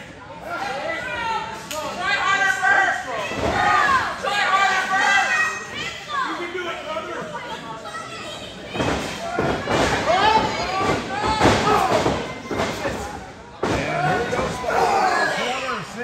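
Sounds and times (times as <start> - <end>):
people shouting in a large hall: 0.0 - 16.0.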